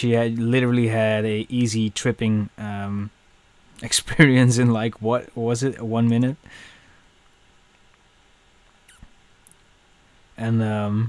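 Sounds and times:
faint falling squeak: 8.9s - 9.1s.

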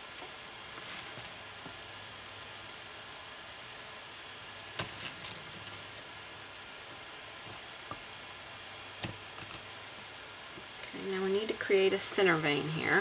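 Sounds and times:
steady low hiss: 0.0s - 13.0s.

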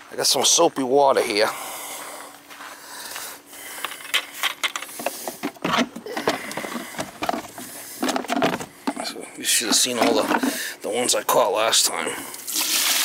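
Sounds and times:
plastic knocks and clatter: 5.4s - 9.0s.

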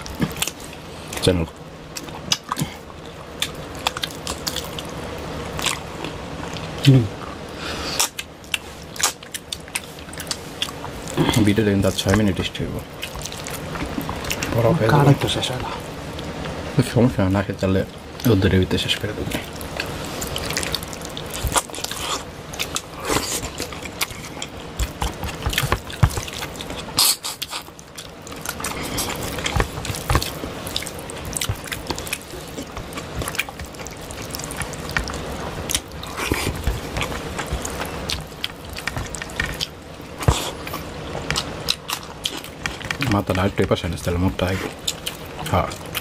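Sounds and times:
chewing and lip-smacking: 0.0s - 1.3s, 1.9s - 5.0s, 5.6s - 7.4s, 8.0s - 11.5s, 12.9s - 14.6s, 19.2s - 43.2s, 44.4s - 46.0s.

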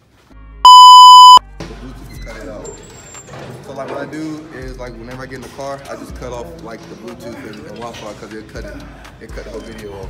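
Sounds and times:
censor bleep: 0.6s - 1.4s.

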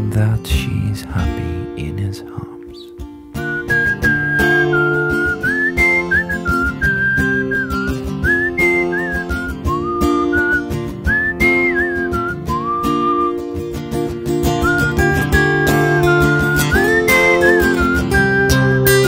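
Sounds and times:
sustained guitar chords: 0.0s - 19.0s
whistled melody: 2.7s - 19.0s.

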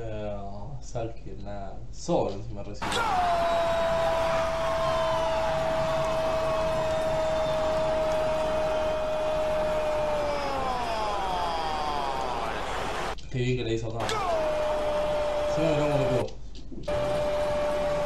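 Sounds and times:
man shouting goal: 2.8s - 13.1s, 14.0s - 16.3s
stadium crowd noise: 2.8s - 13.2s, 14.0s - 16.3s, 16.9s - 18.0s.

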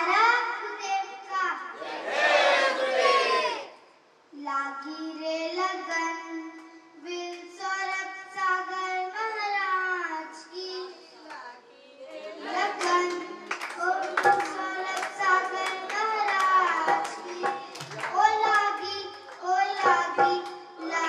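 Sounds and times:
people clapping: 12.4s - 21.0s
girl singing into a microphone: 12.6s - 21.0s
drum strokes: 16.6s - 18.8s, 19.8s - 21.0s.

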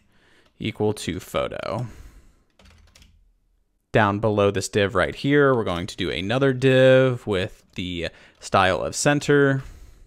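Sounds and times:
keyboard typing: 2.5s - 3.2s.

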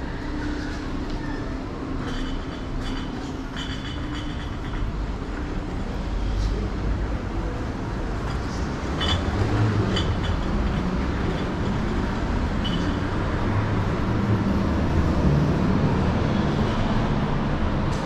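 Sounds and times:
train rumbling on tracks: 0.0s - 18.0s.

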